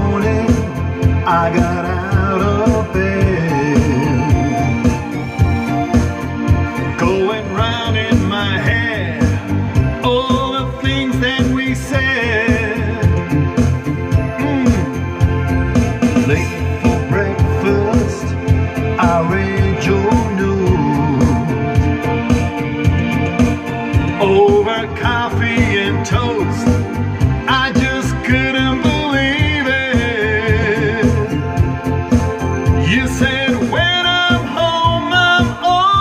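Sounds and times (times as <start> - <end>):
man singing into microphone: 0.0 - 4.7, 6.8 - 15.1, 16.2 - 22.0, 24.1 - 31.6, 32.7 - 36.0
backing music with steady beat: 0.0 - 36.0.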